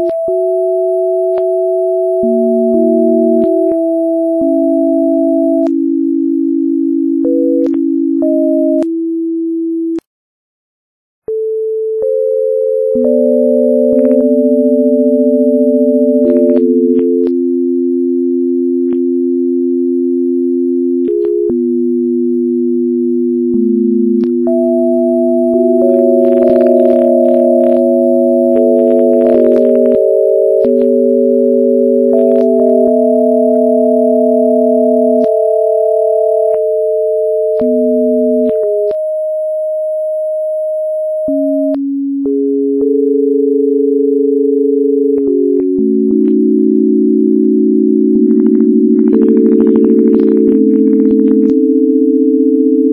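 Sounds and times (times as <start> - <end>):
pitch change clicks: 0.0 - 9.1, 11.3 - 19.8, 20.8 - 52.9
sine tones changing pitch: 0.0 - 10.0, 11.3 - 52.9.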